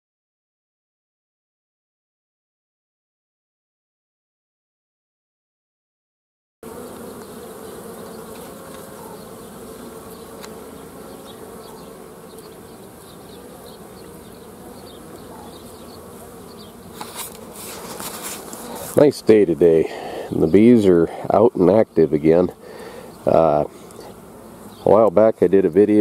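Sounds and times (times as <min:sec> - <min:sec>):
honeybees buzzing: 0:06.6 - 0:26.0
scratchy rustling: 0:16.8 - 0:19.1.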